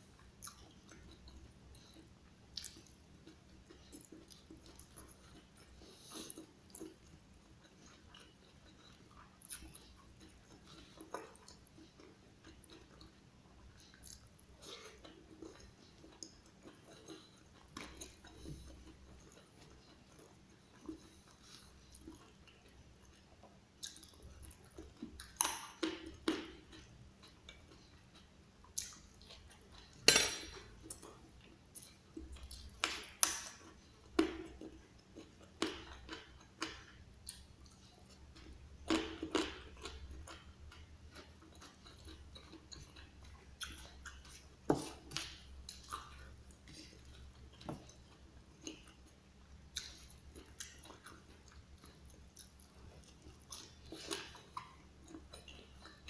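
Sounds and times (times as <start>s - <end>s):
chewing food: 0.0s - 56.0s.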